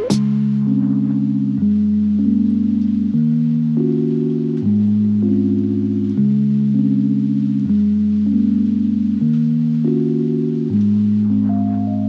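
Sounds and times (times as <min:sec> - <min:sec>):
slow sustained chords: 0:00.0 - 0:12.0.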